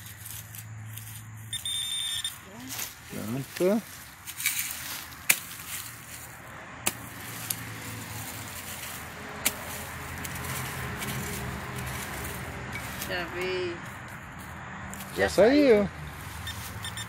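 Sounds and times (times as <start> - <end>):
digging tool knocking soil: 4.3 - 6.2, 6.8 - 13.2.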